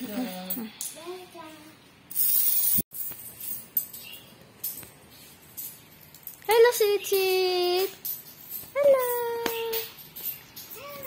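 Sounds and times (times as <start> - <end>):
child's voice: 0.9 - 1.8, 10.7 - 11.0.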